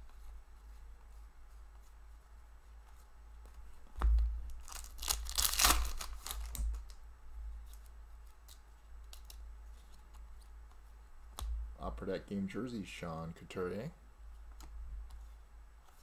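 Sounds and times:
wrapper torn open: 4.5s - 7.0s.

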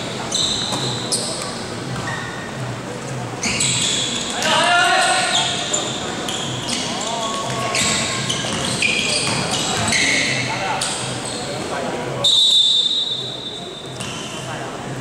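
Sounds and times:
sneakers squeaking on floor: 0.0s - 14.6s
basketball bouncing on court: 0.6s - 1.0s, 6.3s - 10.0s.

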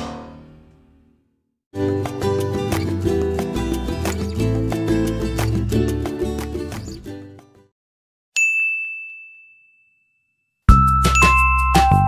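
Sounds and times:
bright ding: 8.4s - 12.0s
background music with steady beat: 10.7s - 12.0s.

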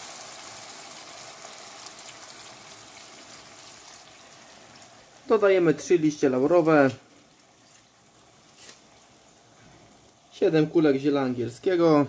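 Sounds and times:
water simmering in frying pan: 0.0s - 12.0s
leaves dropped into liquid: 7.6s - 9.0s.

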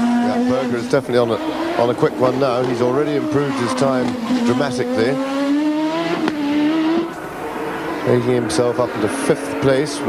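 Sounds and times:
racing car engine revving: 0.0s - 10.0s.

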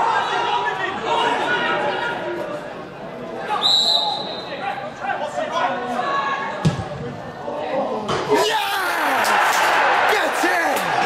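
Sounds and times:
referee's whistle: 3.6s - 4.6s.

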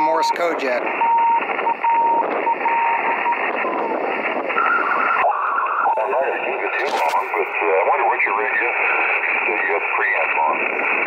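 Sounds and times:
radio static hiss: 0.0s - 11.0s
morse code tone: 1.0s - 4.0s.

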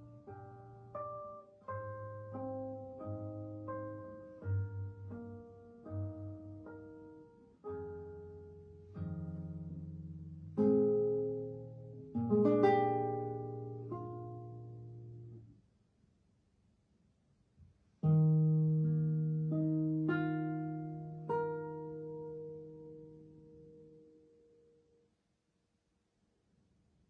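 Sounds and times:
classical guitar playing: 0.0s - 15.5s, 18.0s - 25.0s.

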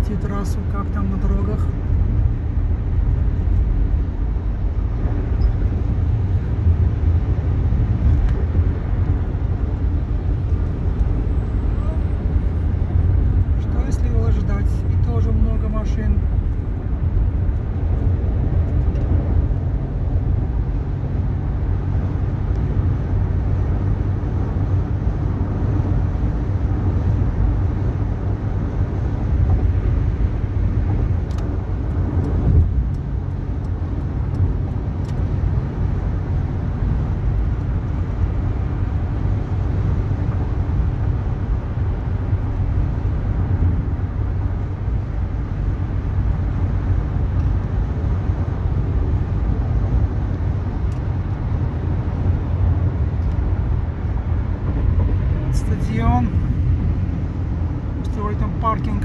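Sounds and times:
car road and engine rumble: 0.0s - 59.0s.

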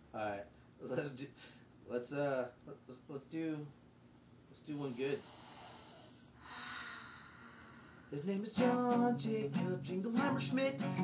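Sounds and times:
soft breath: 4.7s - 8.2s.

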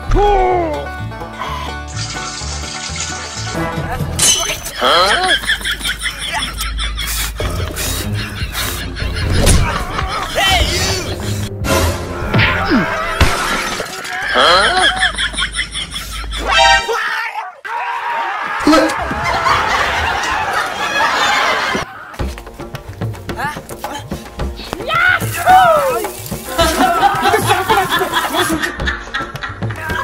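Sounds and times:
background music: 0.0s - 17.0s, 18.6s - 30.0s
crash and glass shattering: 4.2s - 4.8s, 13.0s - 14.3s
person giggling and laughing: 4.8s - 11.2s, 14.3s - 16.6s, 26.5s - 30.0s.

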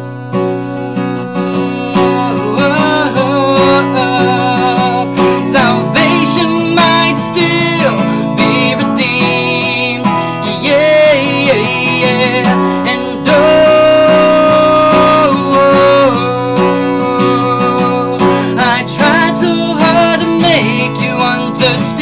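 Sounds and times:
man singing: 0.0s - 22.0s
strummed acoustic guitar: 0.0s - 22.0s.

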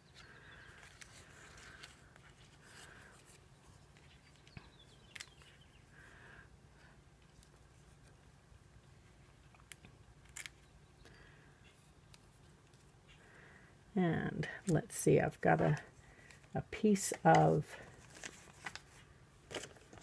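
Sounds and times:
paper pieces handled: 0.1s - 5.6s, 15.7s - 20.0s.

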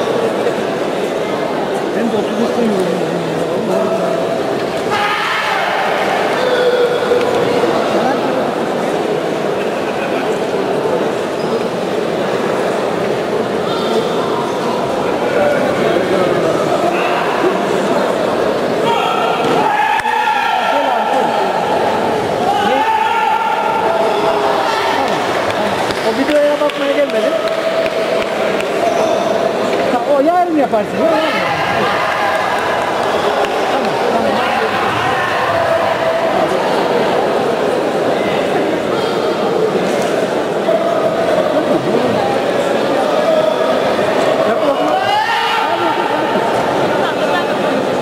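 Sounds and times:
people talking and calling out: 0.0s - 48.0s.

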